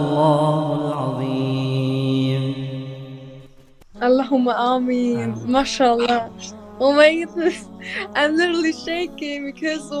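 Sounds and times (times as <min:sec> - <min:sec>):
man reciting: 0:00.0 - 0:03.3, 0:05.0 - 0:10.0.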